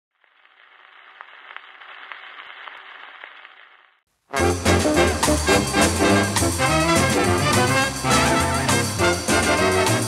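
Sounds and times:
gramophone record hiss and crackle: 0.2s - 4.3s.

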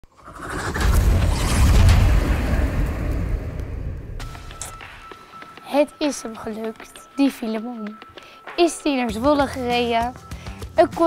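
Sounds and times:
deep rumbling boom: 0.3s - 5.0s.

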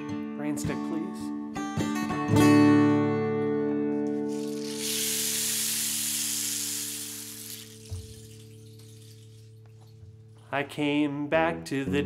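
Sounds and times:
steady hiss: 4.3s - 9.6s.

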